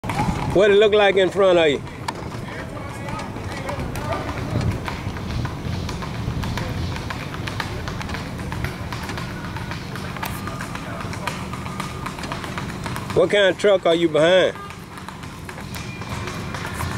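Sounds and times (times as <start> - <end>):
hooves clopping on asphalt: 0.0 - 16.9
slow vehicle rumble: 0.0 - 16.9.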